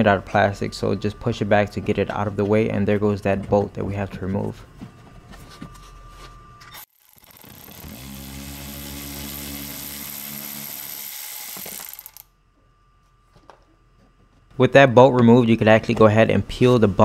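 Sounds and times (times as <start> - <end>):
cordless ratchet motor whine: 6.6 - 12.3.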